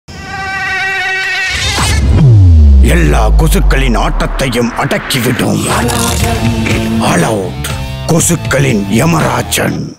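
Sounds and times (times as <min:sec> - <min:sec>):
low rumble: 0:02.0 - 0:07.4
mosquito wingbeat whine: 0:05.9 - 0:07.6.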